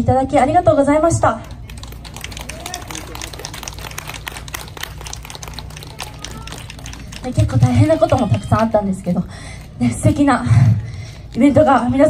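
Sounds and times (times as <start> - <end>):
steady low hum: 0.0 - 12.0
audience applauding: 1.4 - 8.8.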